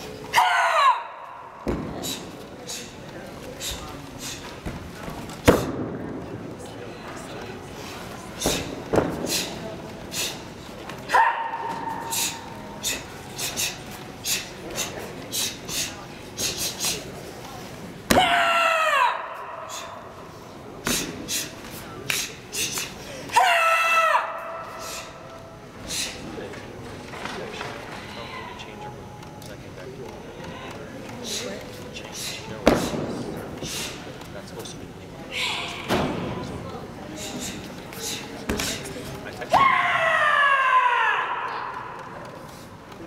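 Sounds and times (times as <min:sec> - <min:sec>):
background chatter in a hall: 0:00.0 - 0:43.0.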